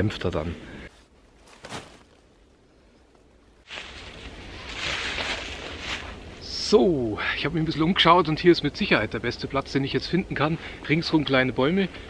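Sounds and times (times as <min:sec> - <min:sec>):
rustling of dry leaves: 0:01.0 - 0:02.6, 0:03.6 - 0:06.4.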